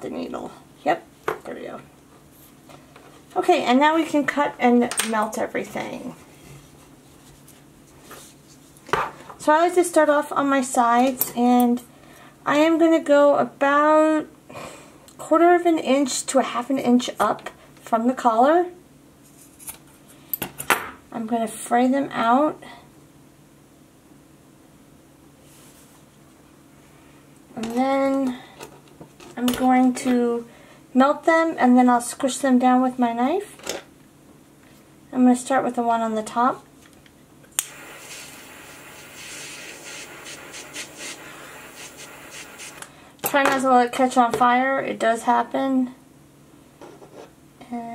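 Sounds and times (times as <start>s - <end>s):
lighter clicking: 37.6s - 38.8s
lighter flame hissing: 37.6s - 42.9s.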